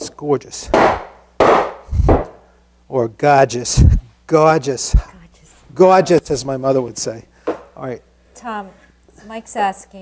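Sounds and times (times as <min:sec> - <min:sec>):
knocks on a holdfast: 0:00.7 - 0:02.4.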